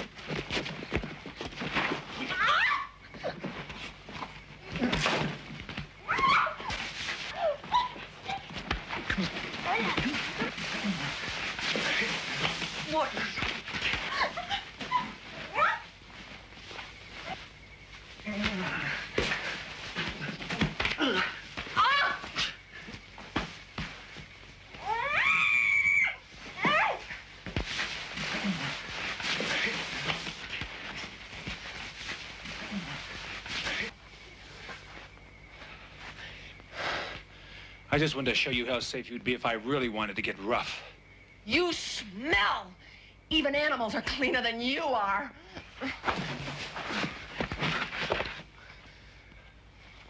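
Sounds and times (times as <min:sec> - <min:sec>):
scuffling on dusty ground: 0:03.2 - 0:36.2.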